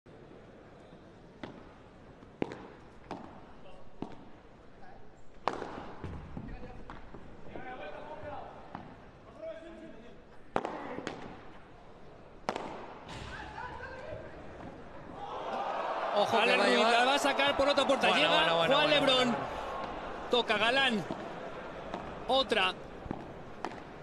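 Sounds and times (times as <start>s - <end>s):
padel ball hit by rackets: 5.4s - 7.0s, 12.4s - 13.3s, 23.0s - 24.0s.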